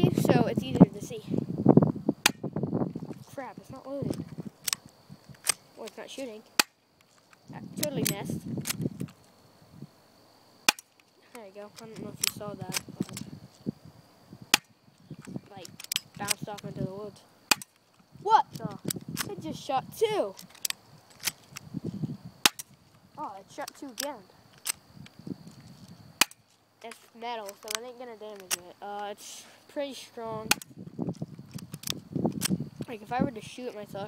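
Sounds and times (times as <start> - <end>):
airsoft pistol click: 4.1 - 5.6, 14.5 - 16.4, 17.5 - 17.8, 22.4 - 22.8, 30.5 - 30.7, 31.5 - 32.6
airsoft pistol firing snap: 17.5 - 17.7.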